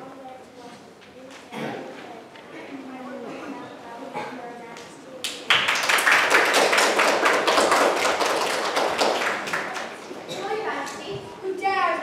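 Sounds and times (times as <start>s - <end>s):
crowd applause: 5.5s - 10.3s.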